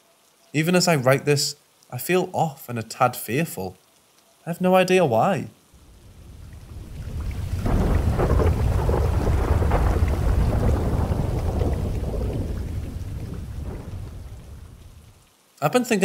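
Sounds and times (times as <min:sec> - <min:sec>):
steady rain: 0:00.0 - 0:16.0
thunder rolling: 0:05.8 - 0:15.2.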